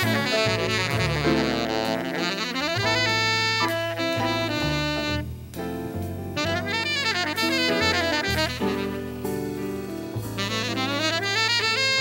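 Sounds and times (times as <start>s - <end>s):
saxophone long held notes: 0.0s - 5.4s, 6.4s - 12.0s
jazz rhythm section: 0.0s - 12.0s.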